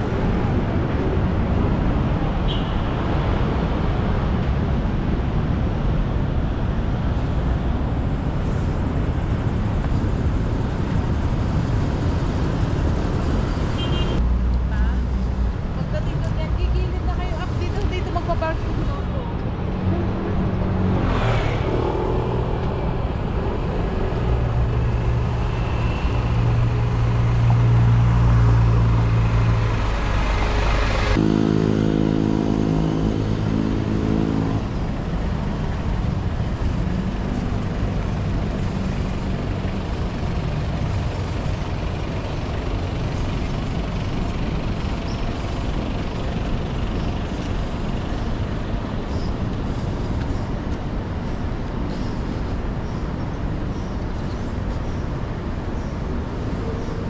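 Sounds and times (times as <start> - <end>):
low engine hum: 0.0 - 57.0
vehicle engines passing: 0.0 - 57.0
steady pitched engine note: 31.2 - 34.4.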